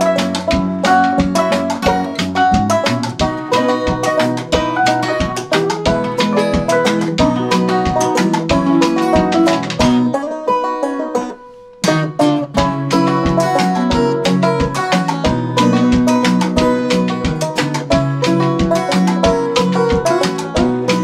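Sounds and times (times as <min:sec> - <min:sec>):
acoustic blues band playing: 0:00.0 - 0:21.0.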